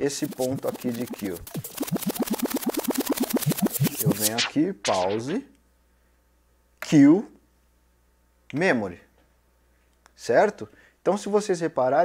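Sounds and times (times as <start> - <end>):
music scrubbed with jog wheel: 0.0 - 5.3.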